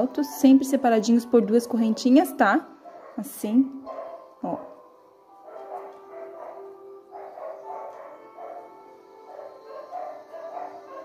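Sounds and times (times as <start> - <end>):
dogs barking and yapping: 1.8 - 11.0.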